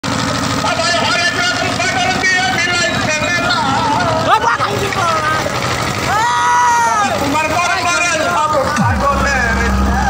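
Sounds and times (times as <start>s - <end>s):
boat engine rumbling: 0.0s - 10.0s
men calling out: 0.6s - 10.0s.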